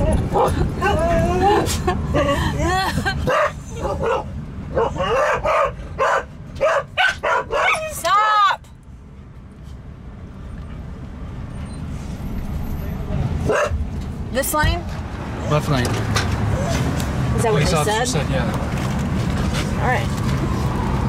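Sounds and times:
vehicle humming: 0:00.0 - 0:21.0.

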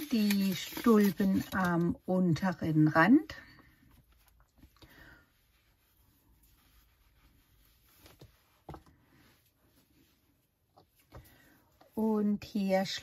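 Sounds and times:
faint yarn rustling: 0:00.0 - 0:13.0.

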